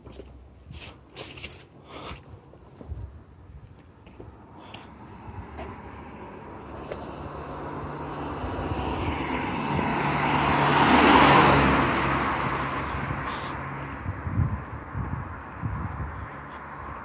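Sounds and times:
car driving past: 5.0 - 14.2.

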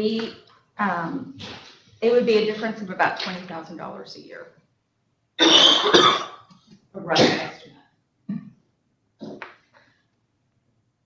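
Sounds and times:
person coughing: 5.4 - 6.5.

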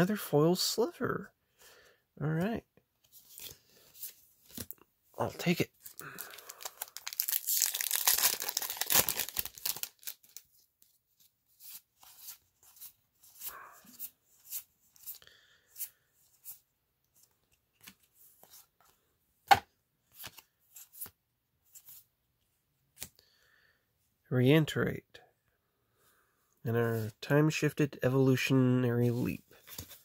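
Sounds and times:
foil wrapper tearing: 5.9 - 10.4
cards sliding and flicking: 20.1 - 22.0, 29.6 - 30.0.

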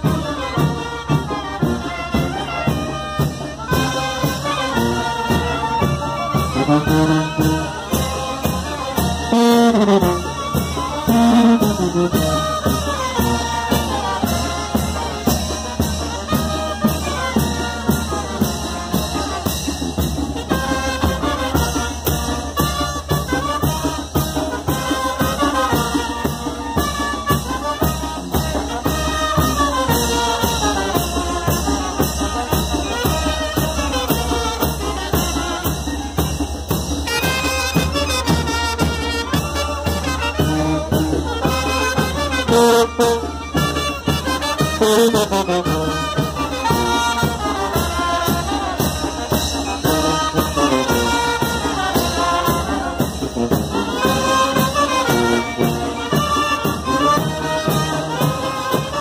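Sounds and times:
brass band playing: 0.0 - 59.0
steady drum beat: 0.0 - 59.0
trumpets and trombones: 0.0 - 59.0.

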